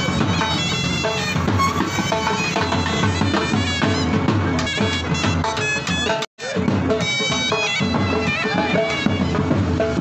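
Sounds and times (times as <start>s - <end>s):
reedy wind melody: 0.0s - 6.2s
drumbeats: 0.0s - 10.0s.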